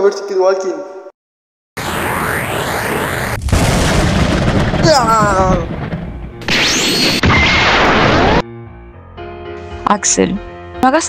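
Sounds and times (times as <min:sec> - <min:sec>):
loud boom: 0:01.8 - 0:08.4.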